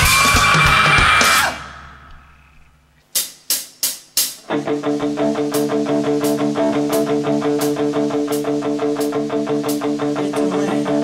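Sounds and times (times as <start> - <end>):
live rock band playing: 0.0 - 1.6, 4.5 - 11.0
hi-hat strikes: 3.1 - 4.5.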